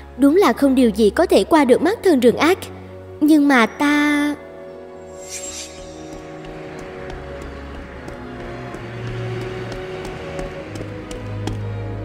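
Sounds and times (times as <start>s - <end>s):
soft background music: 0.0s - 12.0s
wind whoosh: 5.1s - 6.8s.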